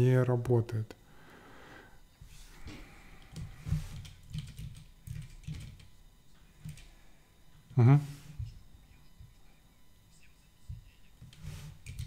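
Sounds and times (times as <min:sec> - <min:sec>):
typing on computer keyboard: 0:04.0 - 0:05.9.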